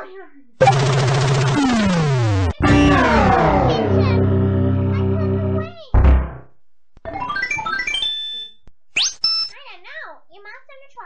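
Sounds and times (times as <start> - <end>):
synthesized video game music: 0.6 - 6.4, 7.1 - 9.5
loud sudden thump: 6.0 - 6.5.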